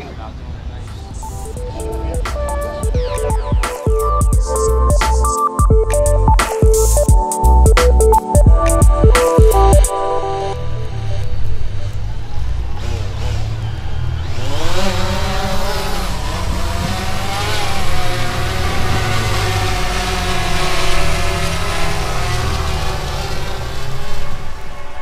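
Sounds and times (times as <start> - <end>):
drone motors whining and buzzing: 1.1 - 25.0.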